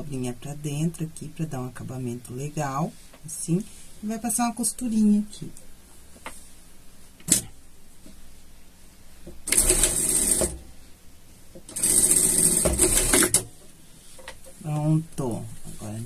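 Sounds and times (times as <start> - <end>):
sewing machine stitching: 9.5 - 10.6, 11.7 - 13.4.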